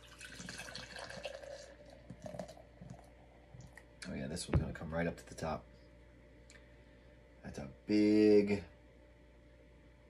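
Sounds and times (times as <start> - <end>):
beer pouring and splashing: 0.0 - 3.7.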